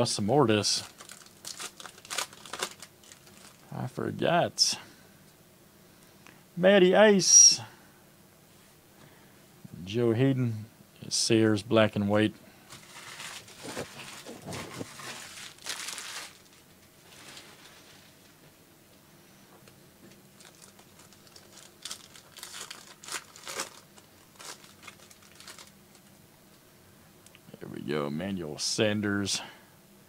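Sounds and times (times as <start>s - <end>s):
foil wrapper crinkling and tearing: 0.8s - 3.7s, 12.7s - 17.9s, 20.4s - 26.1s.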